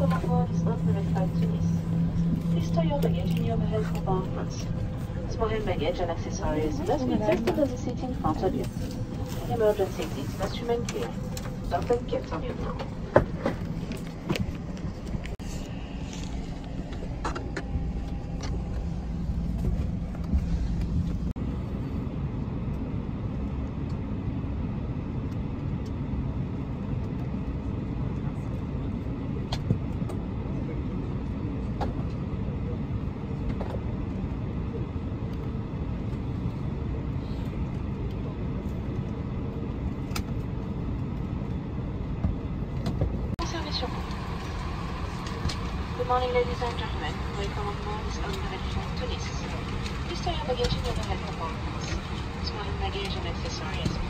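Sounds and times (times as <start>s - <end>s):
faint passenger voices: 0.0s - 18.8s, 26.4s - 42.5s, 43.4s - 54.0s
aircraft cabin low rumble: 0.0s - 54.0s.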